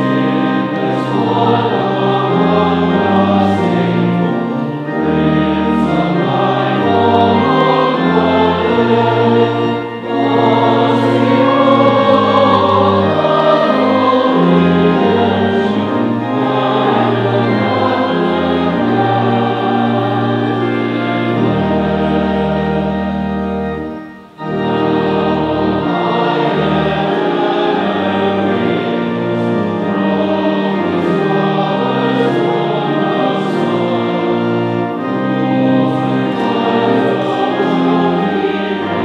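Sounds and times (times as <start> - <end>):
choir and congregation singing hymn: 0.0 - 39.0
pipe organ bass notes: 0.0 - 39.0.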